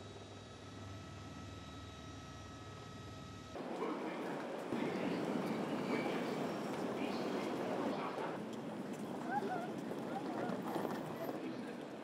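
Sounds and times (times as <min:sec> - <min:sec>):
crowd chatter: 0:03.6 - 0:12.0
wheeled suitcases rolling: 0:08.5 - 0:11.5.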